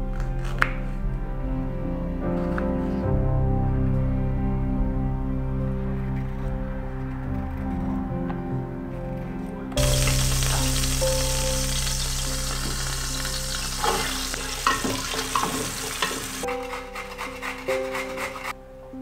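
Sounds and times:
soft background music: 0.0 - 19.0
food sizzling in hot oil: 9.8 - 18.4
carrot scraping on metal grater: 15.3 - 18.5.

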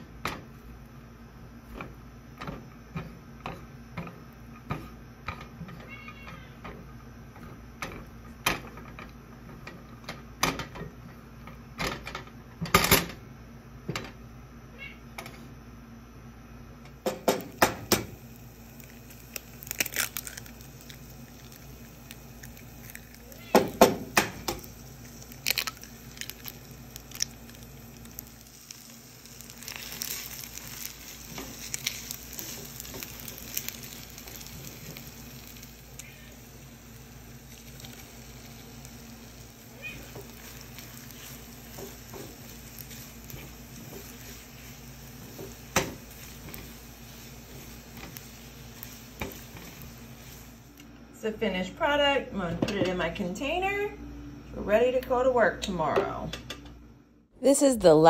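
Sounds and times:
eggs and rice sizzling: 0.0 - 13.2, 16.7 - 52.5
sharp knocks on pan: 17.0 - 18.1.

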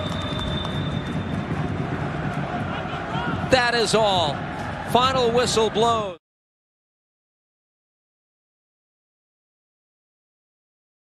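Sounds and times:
stadium low rumble: 0.0 - 6.2.

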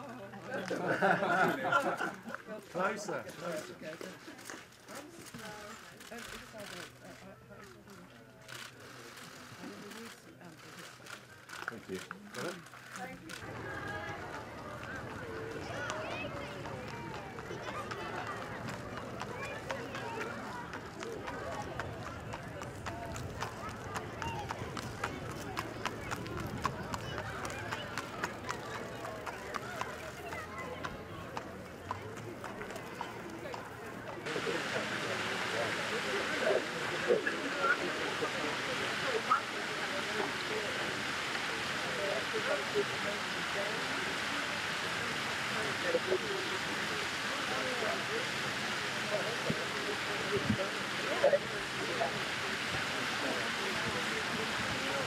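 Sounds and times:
chatter of onlookers: 0.0 - 55.0
distant people talking: 0.0 - 55.0
horse hooves clip-clopping: 11.5 - 34.2.

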